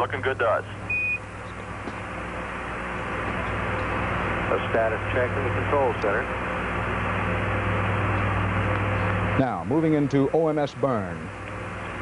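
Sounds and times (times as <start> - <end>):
short high beep: 0.9 - 1.2.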